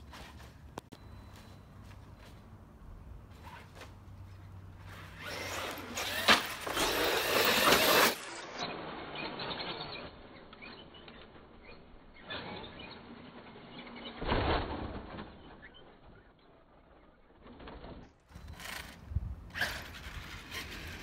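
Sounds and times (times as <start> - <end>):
rc truck motor and tyres rushing: 3.4 - 21.0
rc truck landing on dirt: 5.2 - 11.3, 12.1 - 21.0.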